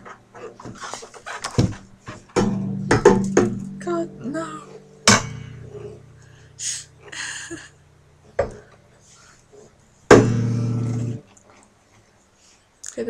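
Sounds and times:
acoustic guitar strummed and ringing: 0:02.3 - 0:06.6, 0:10.0 - 0:11.3.

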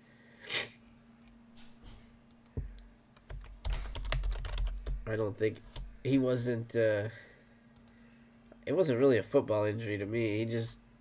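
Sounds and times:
computer keyboard typing: 0:03.2 - 0:05.1.

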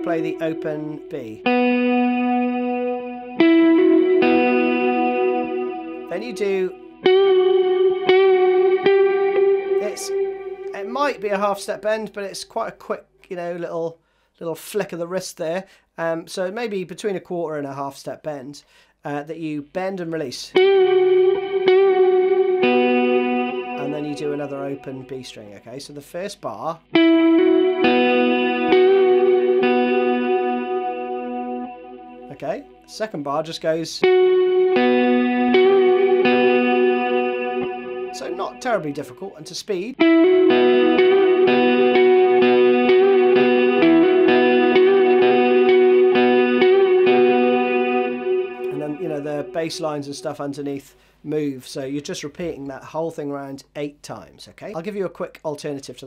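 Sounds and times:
electric guitar riff with reverb: 0:00.0 - 0:12.1, 0:20.5 - 0:25.6, 0:26.8 - 0:51.2.

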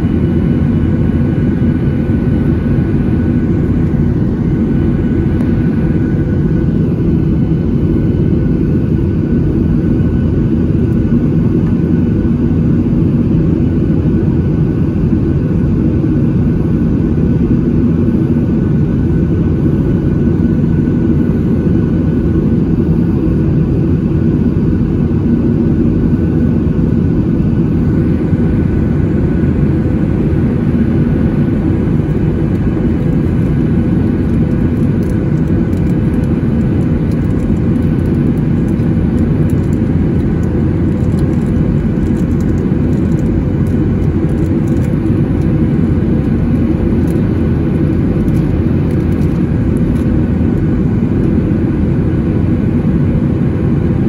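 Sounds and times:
jet engines rumbling: 0:00.0 - 0:54.0.

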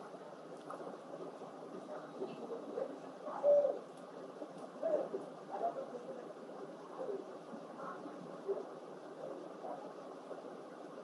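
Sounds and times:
bird cooing: 0:02.2 - 0:03.9.

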